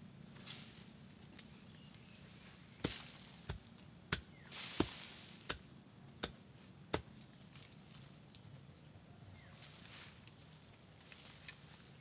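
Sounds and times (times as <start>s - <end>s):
hand tool chopping into soil: 2.8s - 7.2s.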